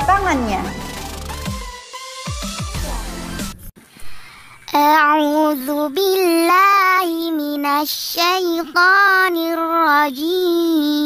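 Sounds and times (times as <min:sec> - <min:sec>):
child singing: 0:04.7 - 0:11.0.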